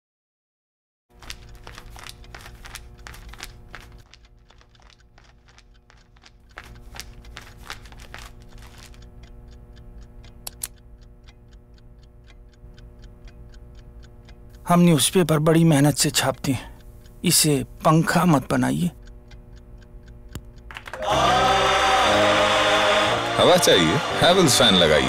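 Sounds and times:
steady ticking: 1.1 - 22.2
newspaper pages rustling: 1.2 - 9.0
low steady hum: 1.2 - 23.4.

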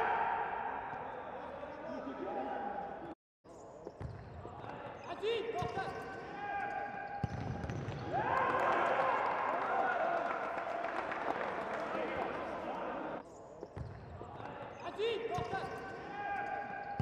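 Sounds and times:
echoing voices shouting: 0.0 - 1.3, 8.0 - 13.2, 14.8 - 17.0
ball kicked and bouncing: 7.2 - 8.1.

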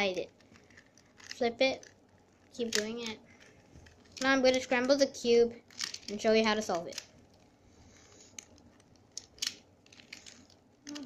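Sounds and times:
plastic puzzle pieces clicking: 0.1 - 5.1, 5.7 - 7.4, 8.1 - 11.0.

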